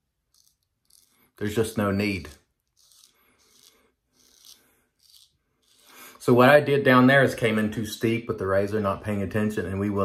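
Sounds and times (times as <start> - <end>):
razor scraping stubble: 0.0 - 6.4.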